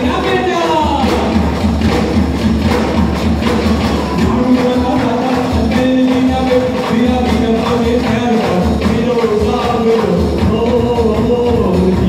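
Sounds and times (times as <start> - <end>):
folk band music over speakers: 0.0 - 12.0.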